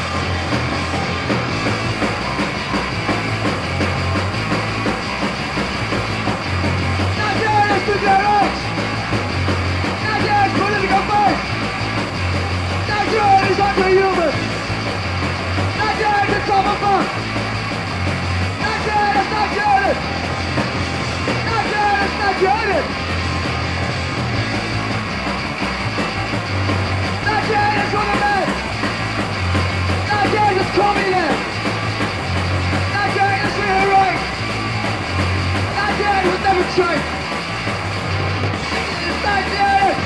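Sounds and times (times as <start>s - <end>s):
distorted electric guitar: 0.0s - 40.0s
punk band playing: 0.0s - 40.0s
rapid drumming: 0.0s - 40.0s.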